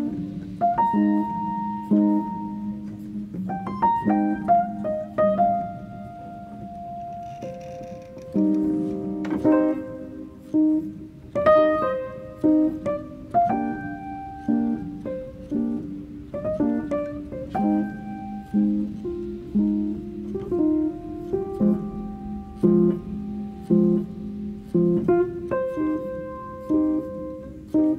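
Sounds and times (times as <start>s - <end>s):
slow piano melody: 0.0s - 27.9s.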